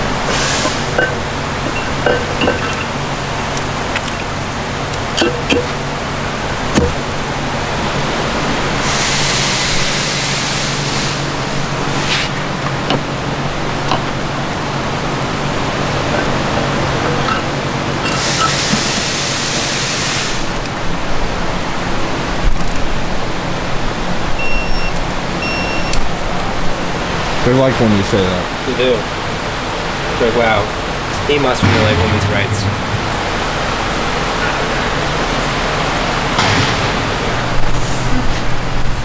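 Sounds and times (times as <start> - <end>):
workshop hum: 0.0 - 20.0, 30.4 - 34.3.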